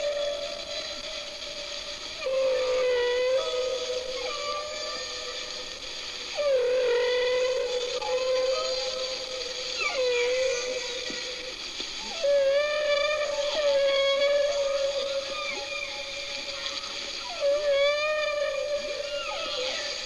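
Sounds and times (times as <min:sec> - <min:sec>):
wavering howl-like wailing: 0:00.0 - 0:20.0.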